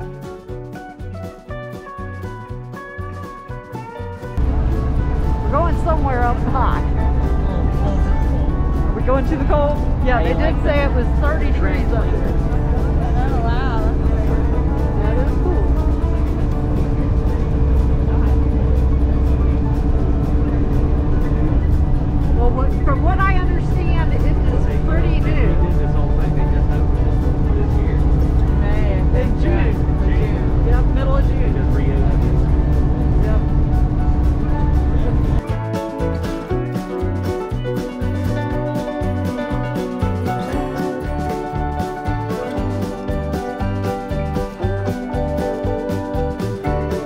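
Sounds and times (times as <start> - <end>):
upbeat music: 0.0 - 47.0
railcar rumbling: 4.4 - 47.0
faint passenger chatter: 4.5 - 35.5.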